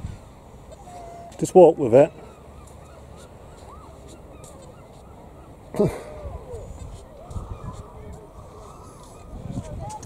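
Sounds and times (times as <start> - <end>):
distant bird calls: 0.1 - 9.5.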